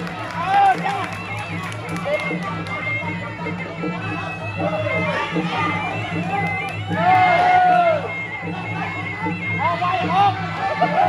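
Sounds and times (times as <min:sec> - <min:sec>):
crowd voices and shouts: 0:00.0 - 0:11.0
drums beating a pulsing rhythm: 0:00.0 - 0:11.0
reedy wind instrument melody: 0:00.0 - 0:11.0.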